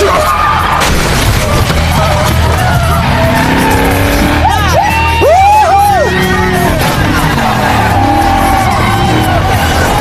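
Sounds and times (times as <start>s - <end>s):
music: 0.0s - 10.0s
race car engine: 0.0s - 10.0s
tires squealing: 0.0s - 10.0s.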